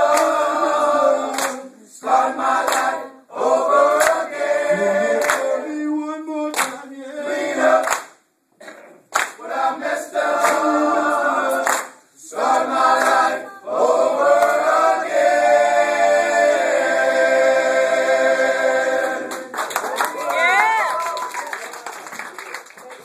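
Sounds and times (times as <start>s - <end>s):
group singing a cappella: 0.0s - 8.2s, 9.3s - 19.6s.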